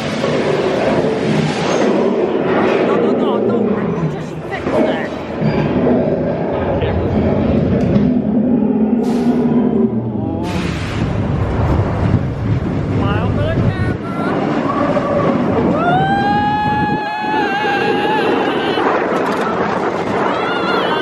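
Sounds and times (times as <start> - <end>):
roller coaster rumbling on track: 0.0 - 21.0
rider screaming: 14.2 - 21.0.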